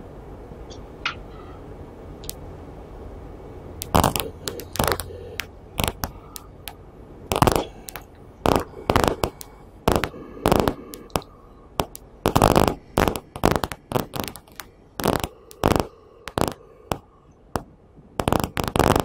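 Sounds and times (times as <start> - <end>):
rustling and crackling: 3.8 - 17.0, 17.6 - 19.0.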